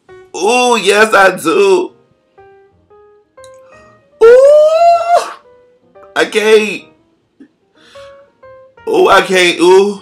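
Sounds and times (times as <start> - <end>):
faint music: 0.0 - 10.0
man's rising falsetto ooh: 4.2 - 5.5.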